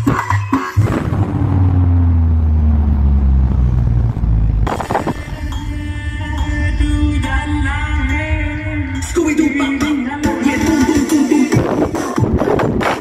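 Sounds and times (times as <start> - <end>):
deep bass tone sliding downward: 0.8 - 10.4
sharp hit: 0.8 - 10.5.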